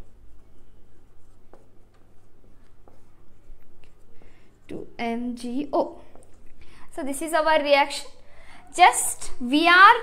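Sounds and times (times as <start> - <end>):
marker pen writing on whiteboard: 0.0 - 6.5
steady low hum: 0.0 - 8.7.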